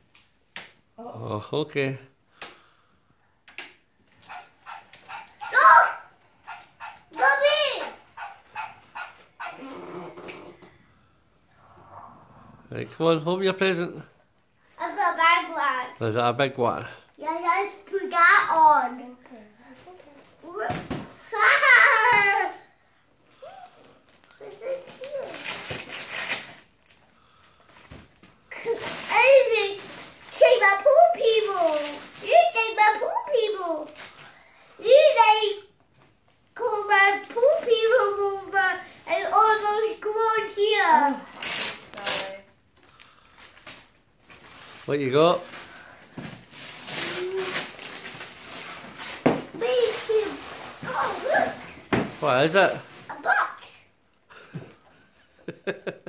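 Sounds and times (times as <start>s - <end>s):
child's excited vocalising: 5.1s - 10.6s, 21.3s - 22.7s, 23.4s - 25.6s, 49.6s - 51.8s
wrapping paper rustling: 23.3s - 34.5s, 39.3s - 53.2s.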